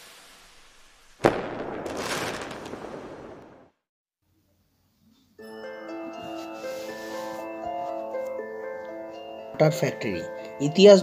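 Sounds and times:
hiss: 0:00.0 - 0:01.4
crackling noise: 0:00.0 - 0:03.8
sharp burst: 0:00.0 - 0:03.8.

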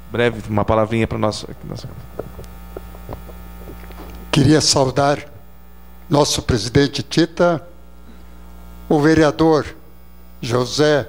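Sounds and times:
electrical mains hum: 0:00.0 - 0:11.0
microphone handling clicks: 0:01.0 - 0:04.4.

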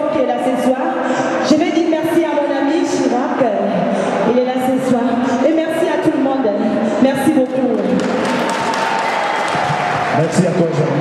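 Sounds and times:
audience applauding: 0:07.4 - 0:11.0.

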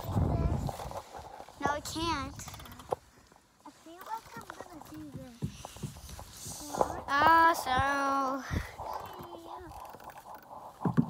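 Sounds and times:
sharp clicks and knocks: 0:02.2 - 0:03.1.

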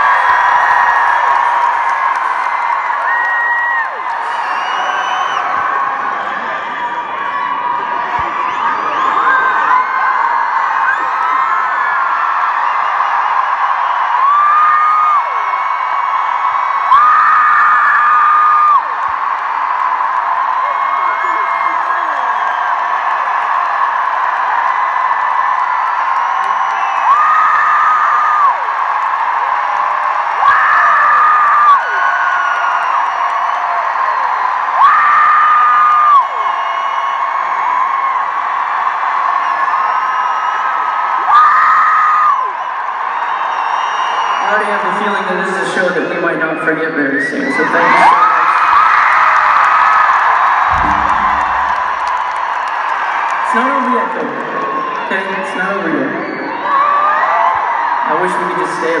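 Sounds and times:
arena crowd cheering and screaming: 0:00.0 - 0:59.0
held screams from nearby fans: 0:16.8 - 0:19.1, 0:26.4 - 0:28.8, 0:30.2 - 0:38.0, 0:39.3 - 0:44.9, 0:54.6 - 0:58.6.

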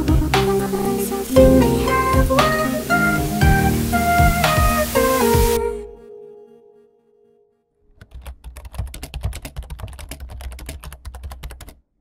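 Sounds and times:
rapid irregular clicking: 0:08.0 - 0:11.8.

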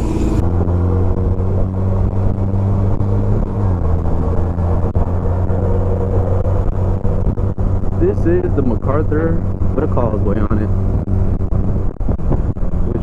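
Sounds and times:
motorcycle engine cruising: 0:00.0 - 0:13.0
wind noise on microphone: 0:00.0 - 0:13.0.

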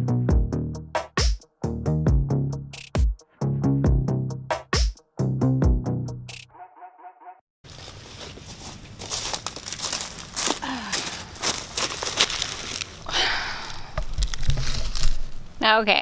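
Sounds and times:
footsteps crunching on woodland floor: 0:07.6 - 0:15.4
camera handling rumble and knocks: 0:14.0 - 0:15.4.

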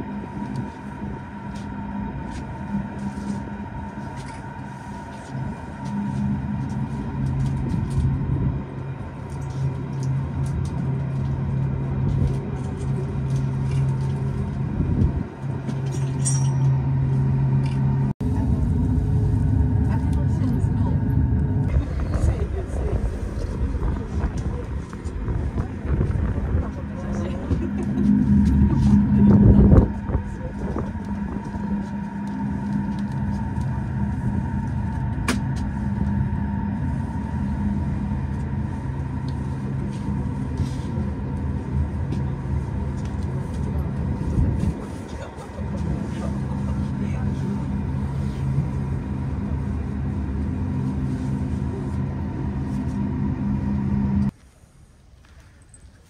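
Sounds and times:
cable car cabin rumbling: 0:00.0 - 0:54.4.

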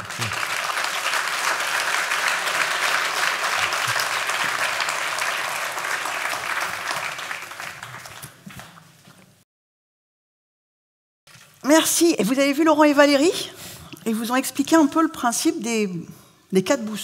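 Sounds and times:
audience applauding: 0:00.0 - 0:08.9.

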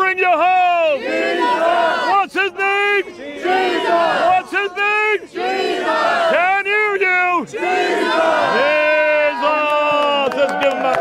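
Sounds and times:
crowd chanting call and response: 0:00.0 - 0:10.2.

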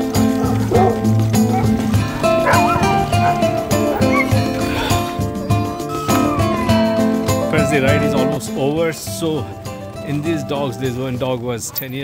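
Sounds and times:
background music with steady beat: 0:00.0 - 0:11.4
sled dogs barking and yipping: 0:00.0 - 0:12.0.

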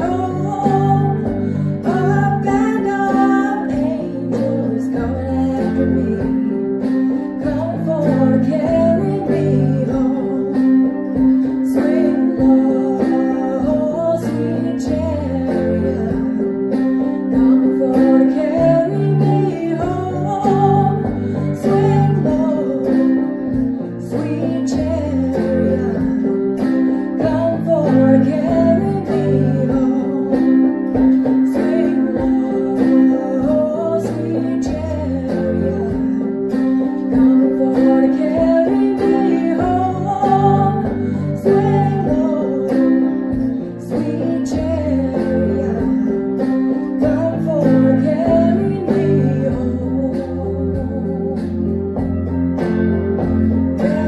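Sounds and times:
electronic keyboard playing chords: 0:00.0 - 0:54.0
woman singing: 0:00.0 - 0:54.0.

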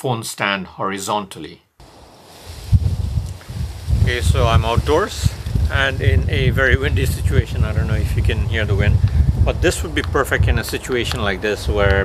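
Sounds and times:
wind buffeting microphone: 0:01.8 - 0:12.0.

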